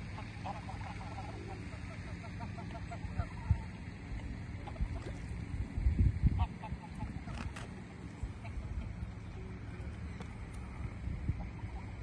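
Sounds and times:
geese honking: 0.0 - 5.2, 6.2 - 10.1, 11.4 - 12.0
wind buffets on microphone: 5.6 - 7.2, 10.7 - 12.0.

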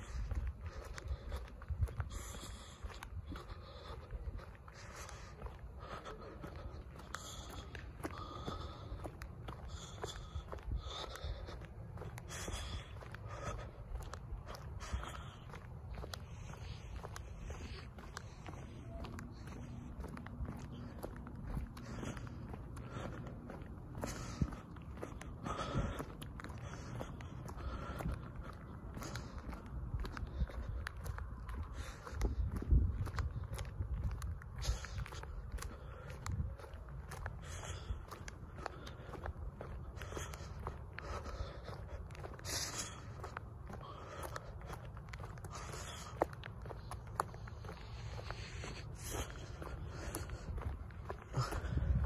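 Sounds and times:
grit crunching under shoes: 0.0 - 52.0
sneaker footsteps on concrete: 0.0 - 52.0.

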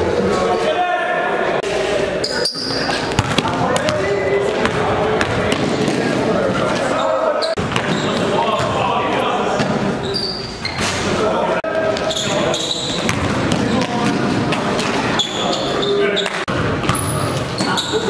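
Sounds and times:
players' indistinct voices: 0.0 - 18.0
sneaker squeaks: 2.2 - 4.0, 6.6 - 8.8, 9.6 - 11.2, 11.8 - 13.9, 14.7 - 18.0.

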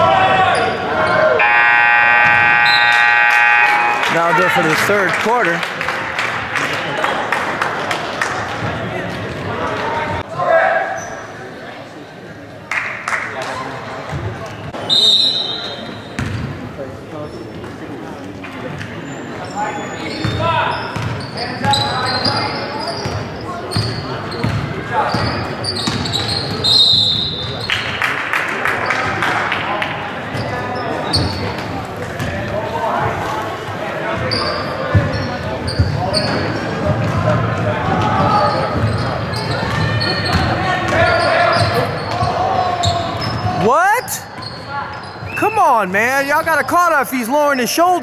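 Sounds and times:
echoing voices in a gym: 0.0 - 48.0
sneaker squeaks: 10.9 - 11.3, 14.2 - 16.6, 17.2 - 17.8, 18.7 - 27.8, 30.3 - 32.4, 34.2 - 37.3, 37.9 - 45.5.

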